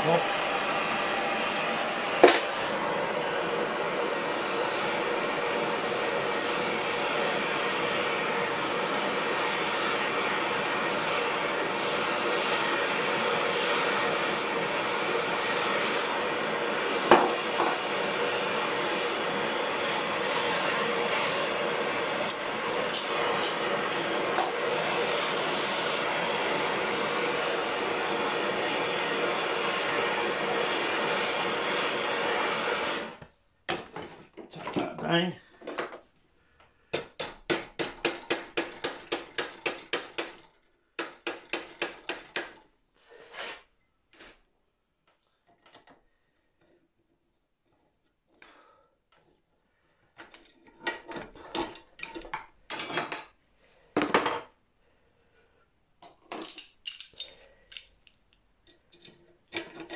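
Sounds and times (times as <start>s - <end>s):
gas blowtorch burning: 0.0s - 34.0s
hammer striking hot metal: 37.0s - 40.4s.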